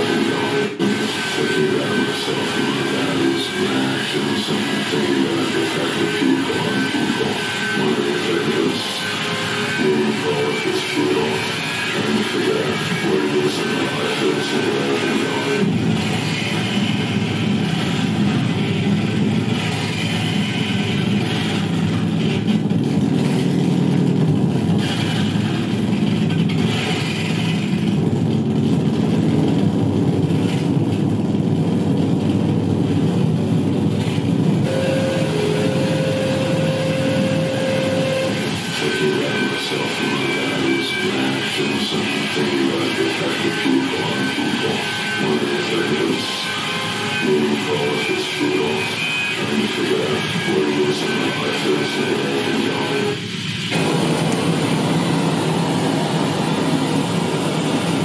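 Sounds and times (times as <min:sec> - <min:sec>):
steady high tone: 0:00.0 - 0:26.3, 0:34.6 - 0:58.0
harsh electronic noise wall: 0:00.0 - 0:58.0.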